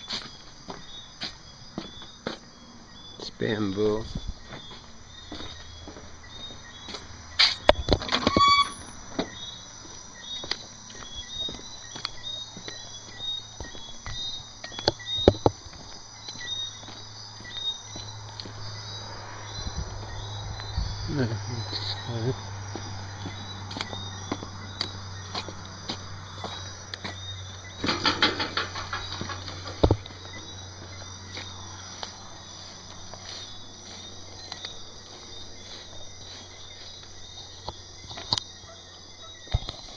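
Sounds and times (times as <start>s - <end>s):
night insects chirping: 0.0s - 39.9s
short rising squeak: 7.4s - 9.0s.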